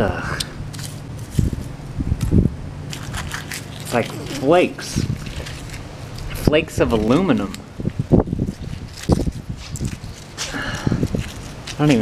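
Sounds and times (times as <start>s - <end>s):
low background hum: 0.0s - 12.0s
wind buffeting microphone: 0.0s - 12.0s
faint crackles of flakes: 2.9s - 7.6s.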